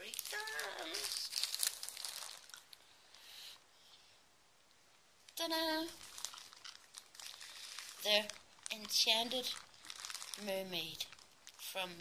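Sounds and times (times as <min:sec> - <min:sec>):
plastic bag crinkling: 0:00.0 - 0:02.9, 0:05.3 - 0:12.0.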